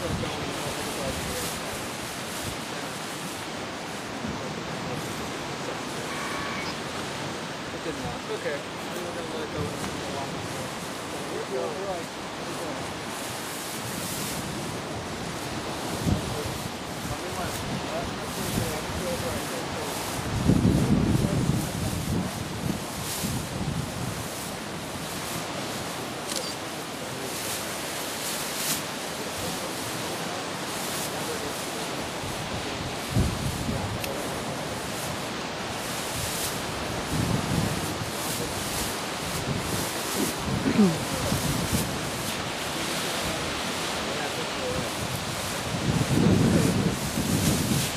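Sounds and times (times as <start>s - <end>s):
lake waves washing against rocks: 0.0s - 47.9s
wind buffeting microphone: 0.0s - 47.9s.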